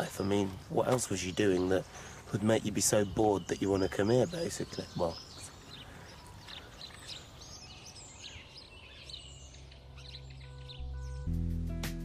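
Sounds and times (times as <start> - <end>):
small birds chirping: 0.0 - 11.4
soft music: 9.8 - 12.0.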